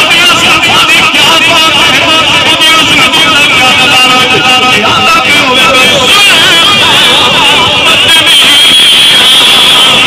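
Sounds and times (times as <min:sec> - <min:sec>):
man chanting over loudspeaker: 0:00.0 - 0:10.0.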